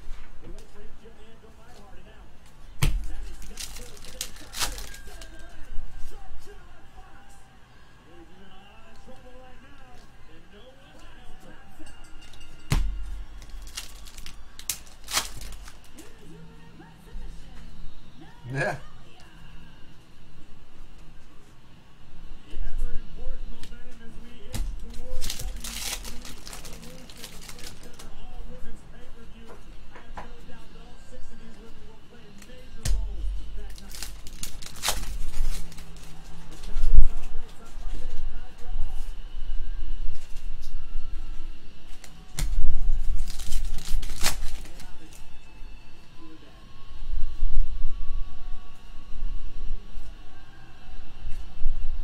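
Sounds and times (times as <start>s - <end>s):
faint voices talking: 0.0s - 52.0s
foil card pack tearing open: 3.0s - 5.5s, 13.4s - 16.0s, 24.8s - 28.1s, 33.6s - 36.8s, 42.0s - 45.2s
cards knocking and clicking: 12.7s - 16.1s.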